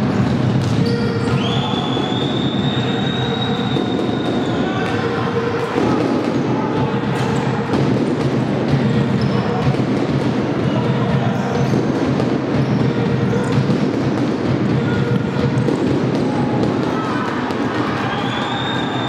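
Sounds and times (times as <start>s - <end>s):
sports hall background noise: 0.0s - 19.0s.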